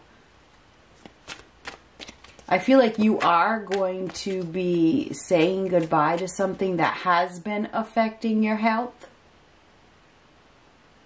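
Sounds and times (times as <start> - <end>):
cards snapping: 1.0 - 6.3.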